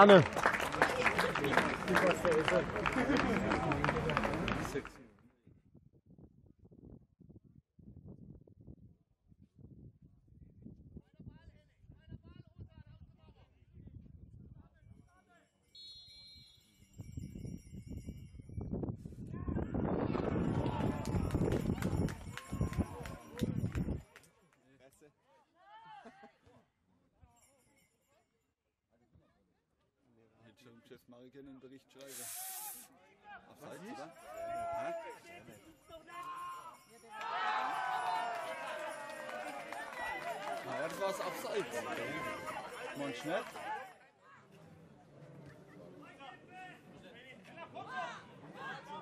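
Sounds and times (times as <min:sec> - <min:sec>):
referee's whistle blast: 0:15.8 - 0:16.7.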